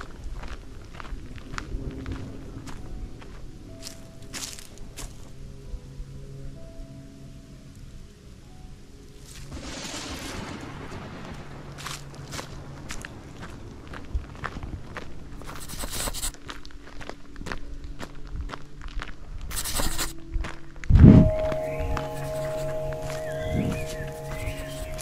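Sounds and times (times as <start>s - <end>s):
footsteps on gravel and leaves: 0.3s - 5.3s, 11.8s - 20.6s, 21.2s - 25.0s
soft music of held tones: 0.7s - 9.8s, 20.1s - 25.0s.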